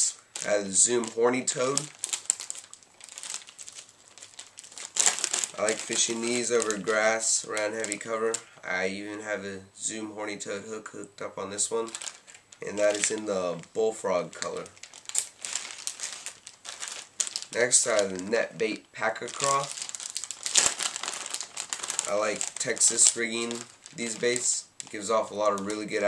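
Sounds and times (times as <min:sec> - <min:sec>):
plastic bag crinkling: 0:00.0 - 0:09.2, 0:11.6 - 0:26.0.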